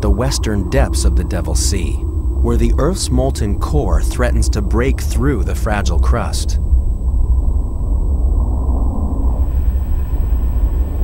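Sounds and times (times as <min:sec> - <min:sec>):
deep steady rumble: 0:00.0 - 0:11.0.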